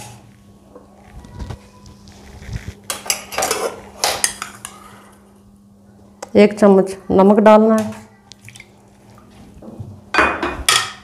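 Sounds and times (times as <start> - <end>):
metal cookware clattering: 10.1 - 11.0.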